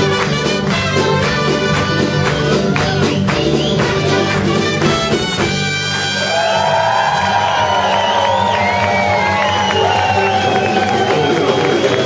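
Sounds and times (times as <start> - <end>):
bass and drums: 0.0 - 12.0
crowd cheering: 0.0 - 12.0
trumpets holding long notes: 4.1 - 6.8.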